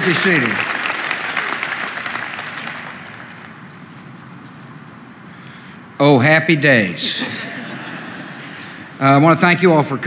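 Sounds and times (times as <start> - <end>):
audience applause: 0.0 - 3.7.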